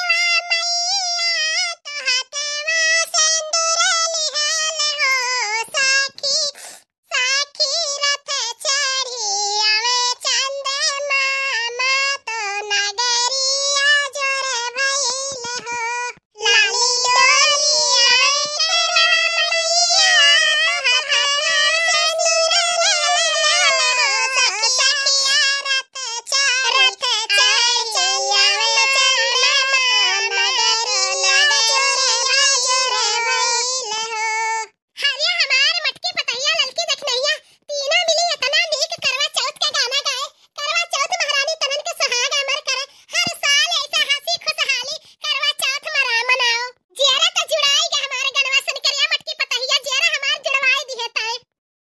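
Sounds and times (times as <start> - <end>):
high-pitched cartoon voice singing: 0.0 - 51.5.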